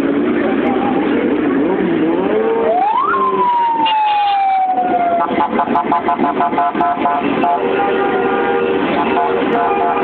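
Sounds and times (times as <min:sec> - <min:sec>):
police siren wailing: 0:02.4 - 0:07.6.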